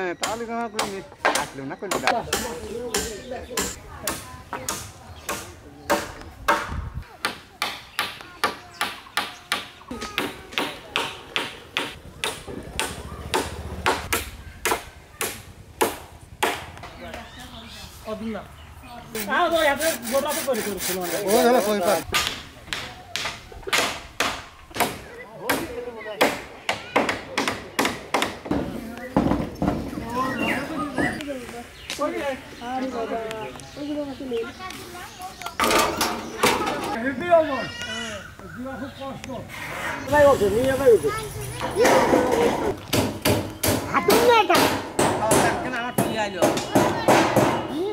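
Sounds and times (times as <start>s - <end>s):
man speaking: 19.2s - 22.1s.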